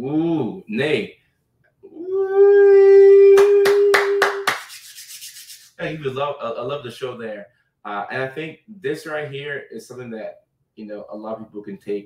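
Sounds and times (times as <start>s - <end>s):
sharp hand claps: 3.4s - 5.6s.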